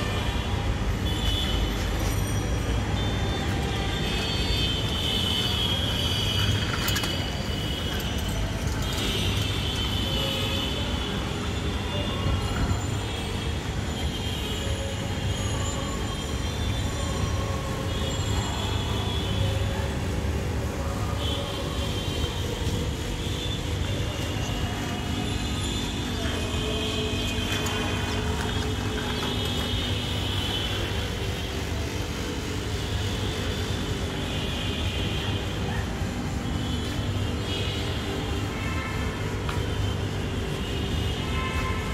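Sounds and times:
low city rumble: 0:00.0 - 0:41.9
bicycle rattling over brick paving: 0:05.7 - 0:10.1, 0:27.2 - 0:30.4.

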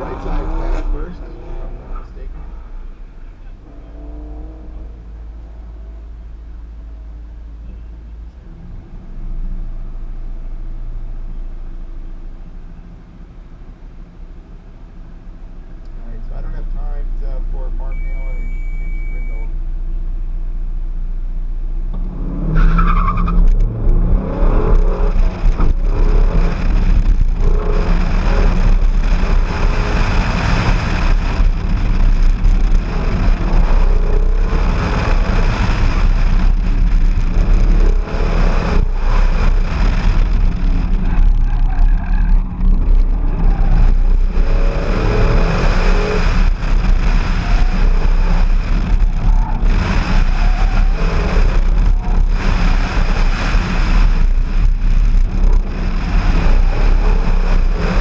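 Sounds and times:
car engine revving: 0:00.0 - 0:19.4, 0:21.6 - 0:58.0
tyre and wind noise: 0:22.0 - 0:58.0.

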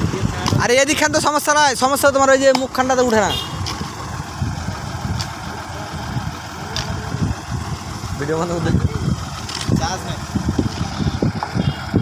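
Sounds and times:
tractor engine idling: 0:00.0 - 0:12.0.

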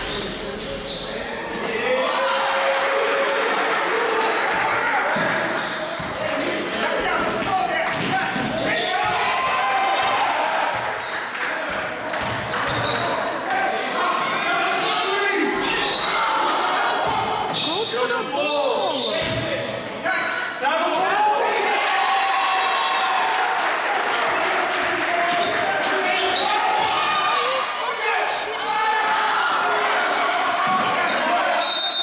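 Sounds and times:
sneakers squeaking: 0:00.0 - 0:01.5, 0:04.4 - 0:09.2, 0:10.7 - 0:13.5, 0:14.6 - 0:16.2, 0:16.9 - 0:21.0, 0:25.3 - 0:29.0, 0:30.5 - 0:32.0
basketball bouncing on court: 0:19.2 - 0:19.6.

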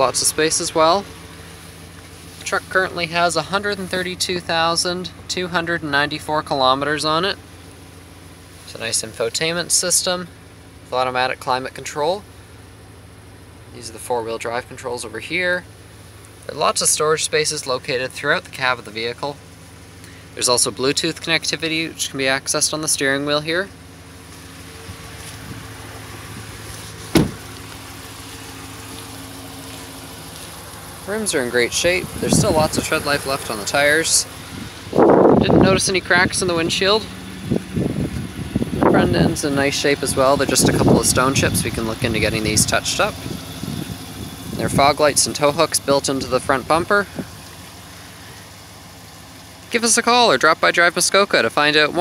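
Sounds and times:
truck engine idling: 0:00.0 - 0:52.0
sharp thump: 0:27.1 - 0:27.5.

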